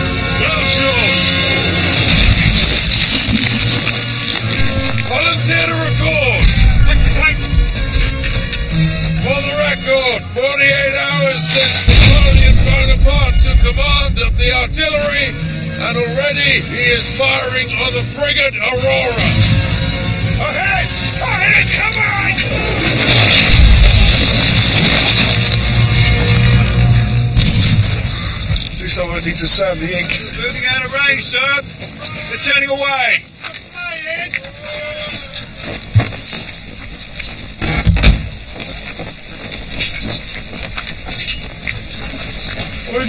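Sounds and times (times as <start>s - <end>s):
sharp bangs: 1.3s - 8.6s, 11.5s - 15.4s, 22.3s - 30.5s
cannon blast: 6.4s - 7.4s, 11.8s - 14.9s, 22.6s - 28.4s
men yelling: 33.7s - 35.5s.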